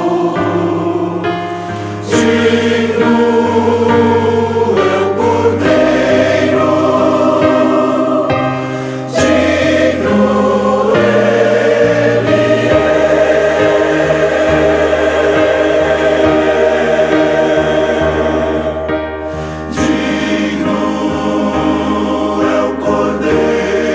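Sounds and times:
church choir singing: 0.0s - 23.9s.

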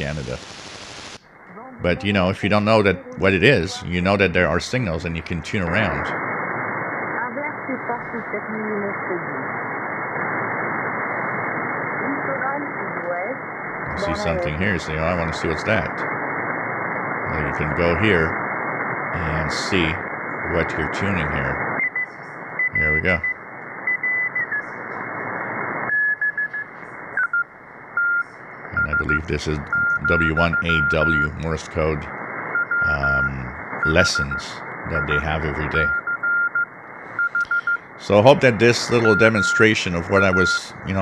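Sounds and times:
faint radio voice: 0.0s - 0.4s, 1.5s - 6.2s, 13.9s - 16.0s, 17.3s - 18.4s, 19.1s - 21.6s, 22.8s - 23.3s, 28.8s - 32.1s, 32.8s - 36.0s, 37.4s - 41.0s
static hiss: 0.0s - 41.0s
morse code beeps: 25.9s - 28.2s, 28.8s - 31.3s, 32.6s - 37.8s, 38.5s - 40.7s.

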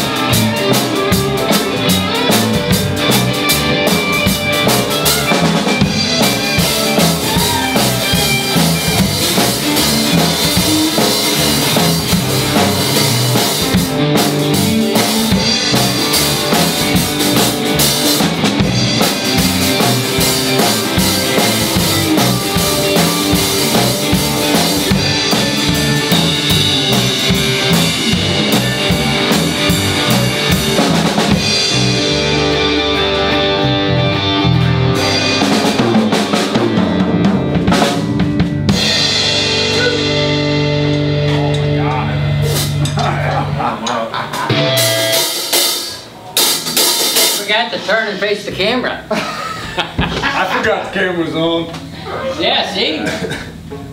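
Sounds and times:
rock band playing live: 0.0s - 49.0s.

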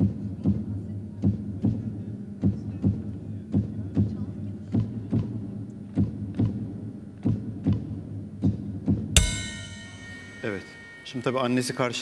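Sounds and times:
music crash with bell-like ringing: 9.2s - 12.0s.

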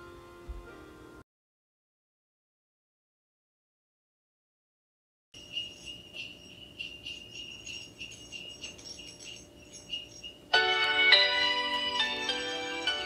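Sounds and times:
instrumental music with bell notes: 5.4s - 13.0s
sleigh bells jingling: 5.4s - 13.0s.

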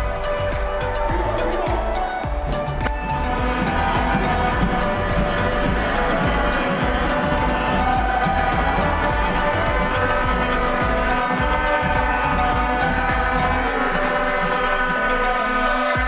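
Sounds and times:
music with sustained chords: 0.0s - 16.0s.

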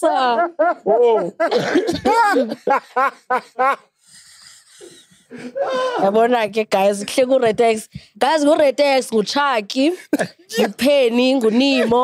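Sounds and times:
people laughing: 0.2s - 6.0s.

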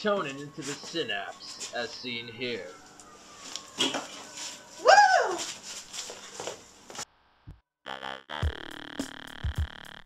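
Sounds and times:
woman shouting woo: 4.8s - 5.5s.

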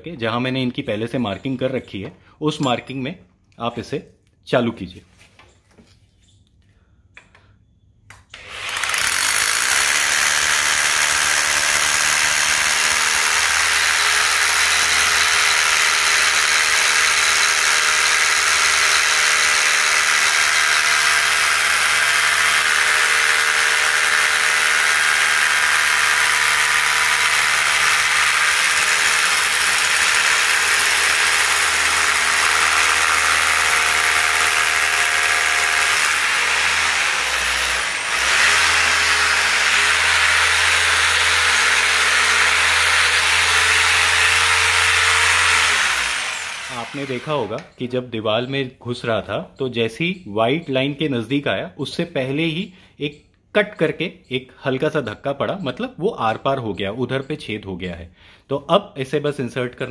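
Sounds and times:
electric drill boring through tiled wall: 8.3s - 47.6s.

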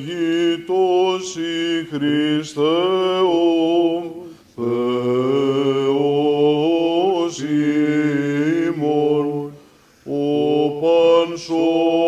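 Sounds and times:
man singing chant: 0.0s - 12.0s.

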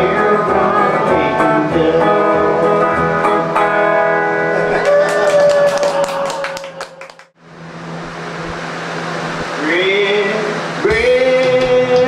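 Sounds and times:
man singing: 0.0s - 3.1s, 9.7s - 12.0s
audience clapping: 4.7s - 7.4s.

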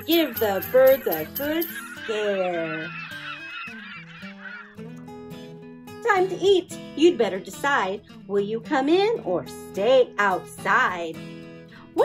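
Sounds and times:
bird calls and chirps: 0.0s - 4.8s
soft background music: 4.9s - 12.0s.

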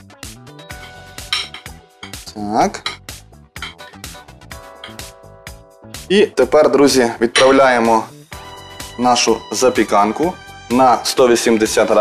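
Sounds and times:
background music: 0.0s - 12.0s
spoon scraping ceramic dish: 0.7s - 2.2s, 2.8s - 3.9s, 4.8s - 5.0s.

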